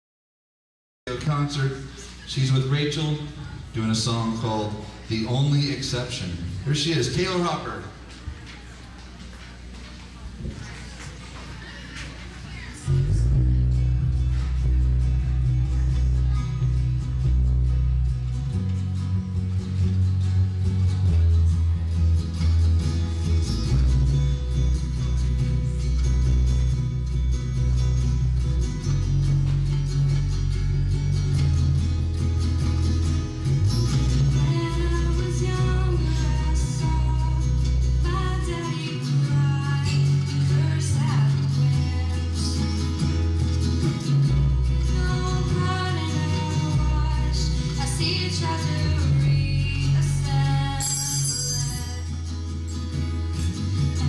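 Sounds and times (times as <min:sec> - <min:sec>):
acoustic guitar playing: 0:12.8 - 0:54.0
girl singing: 0:34.3 - 0:42.8, 0:44.8 - 0:51.0.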